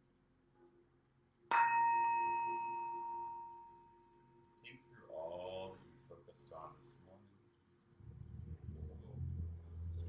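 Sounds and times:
singing bowl ringing: 1.5s - 4.6s.

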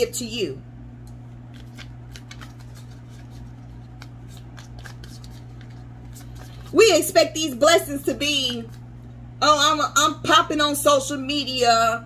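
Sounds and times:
steady low hum: 0.0s - 12.0s
cards being shuffled: 1.2s - 7.1s, 8.3s - 8.8s.

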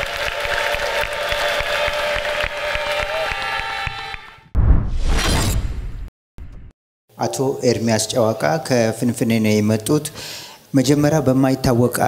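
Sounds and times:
crash transition effect: 4.5s - 6.8s.

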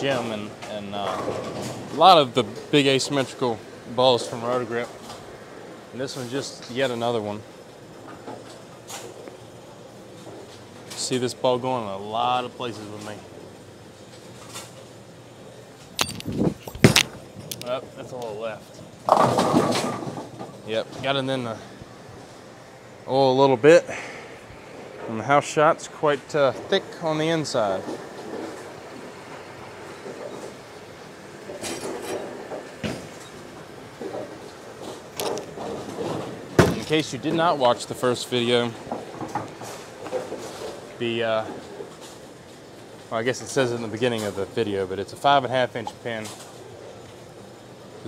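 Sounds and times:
bowling ball rolling: 18.8s - 21.2s, 24.3s - 37.6s
bowling pins knocking: 19.0s - 20.6s, 31.4s - 37.4s.

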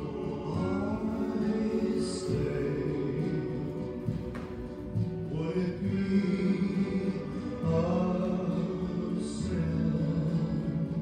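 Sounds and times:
choir singing sustained chords: 0.0s - 4.2s.

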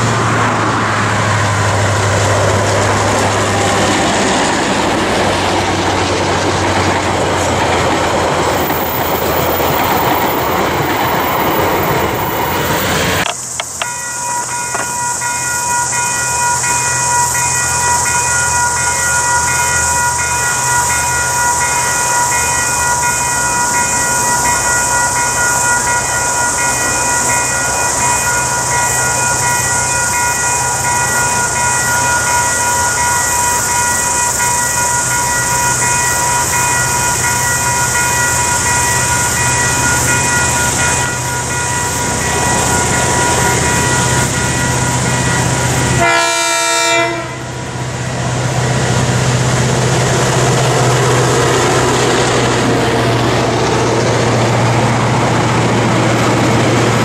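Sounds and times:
train wheels rattling on rails: 0.0s - 57.0s
high-pitched hiss: 11.4s - 46.0s
ringing tones: 13.2s - 46.0s.

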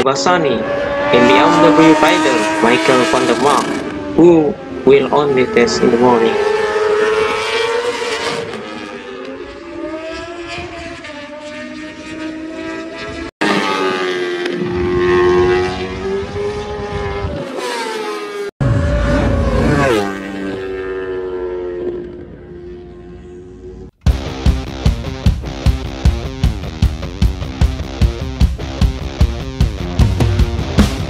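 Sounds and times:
motorcycle engine passing: 0.0s - 23.9s.

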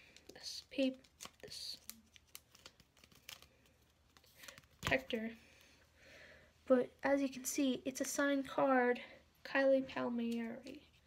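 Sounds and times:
plastic card protector crinkling: 0.0s - 5.3s.

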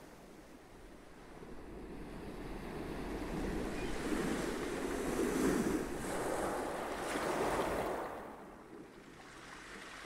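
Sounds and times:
ocean waves rushing in: 0.0s - 10.0s.

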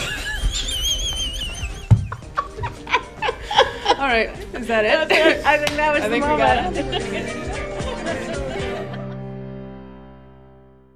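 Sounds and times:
people laughing: 0.0s - 4.3s, 5.0s - 9.3s
background music: 0.0s - 10.9s.

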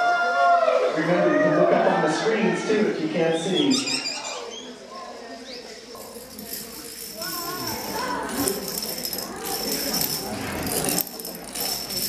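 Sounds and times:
dominoes toppling clatter: 5.9s - 12.0s.

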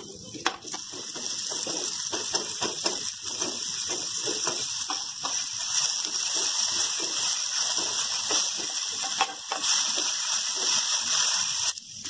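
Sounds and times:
oil sizzling in a pan: 0.0s - 12.0s
wooden spatula scraping and stirring: 3.3s - 11.7s.

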